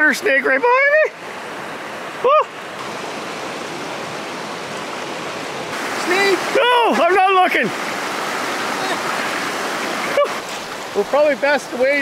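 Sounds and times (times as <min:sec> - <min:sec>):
river rapids rushing over rocks: 0:01.1 - 0:12.0.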